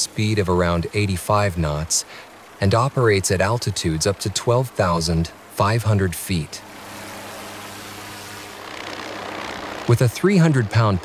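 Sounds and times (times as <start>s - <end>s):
helicopter rotor and engine drone: 0.0s - 11.0s.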